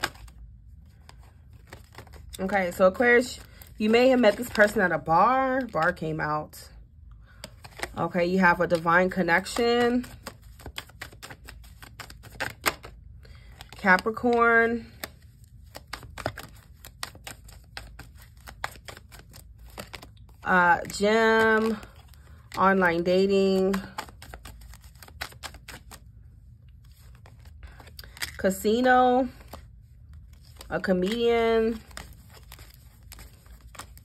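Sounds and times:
cards being shuffled: 0.0s - 6.2s, 7.3s - 26.1s, 26.7s - 34.0s.

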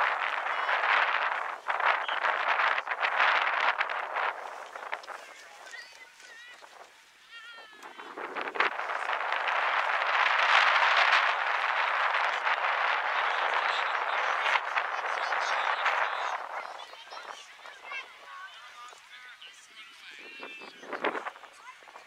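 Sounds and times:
crowd shouting and cheering: 0.0s - 19.3s.

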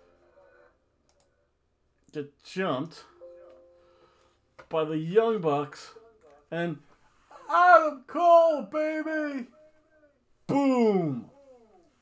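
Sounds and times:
faint clicks: 1.0s - 1.3s.

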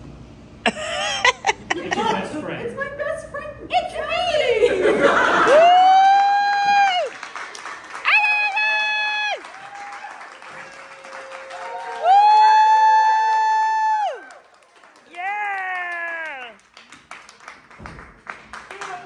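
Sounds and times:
audience applause: 5.3s - 19.0s.

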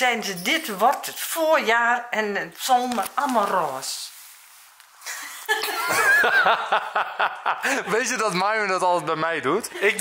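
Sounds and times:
people laughing: 5.1s - 8.2s.

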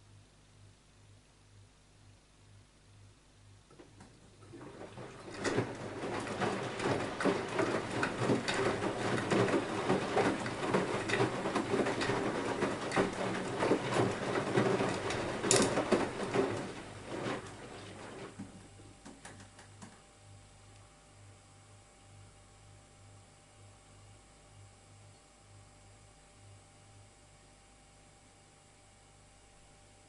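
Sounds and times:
washing machine water sloshing: 3.8s - 19.3s
small clicks in drum: 19.0s - 20.0s.

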